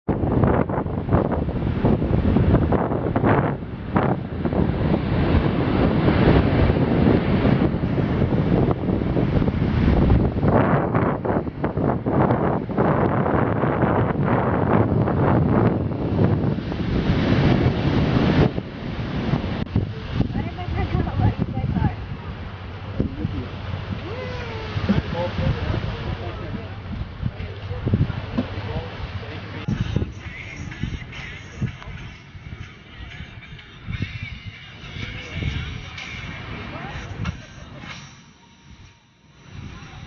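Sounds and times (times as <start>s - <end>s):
wind buffeting microphone: 0.0s - 40.0s
surf rushing: 0.1s - 40.0s.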